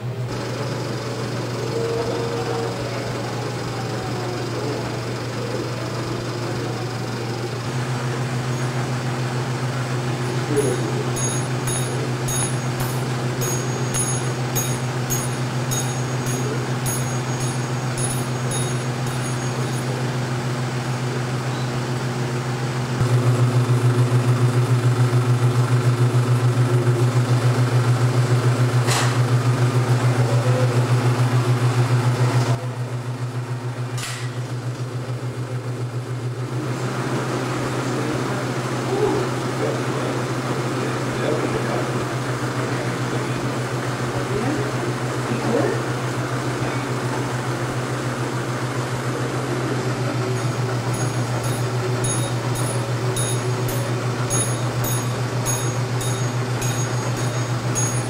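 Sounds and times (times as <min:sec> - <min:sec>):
film projector humming and fluttering: 0:00.0 - 0:58.0.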